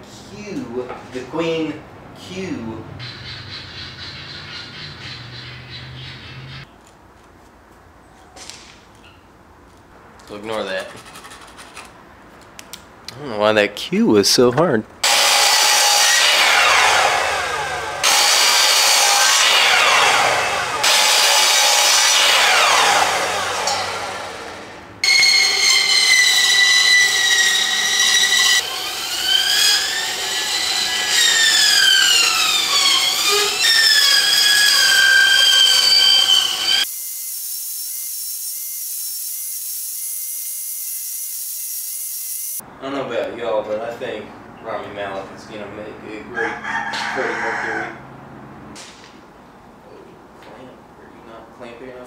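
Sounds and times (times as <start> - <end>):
bandsaw whining: 15.0 - 42.6
miter saw cutting wood: 15.0 - 42.6.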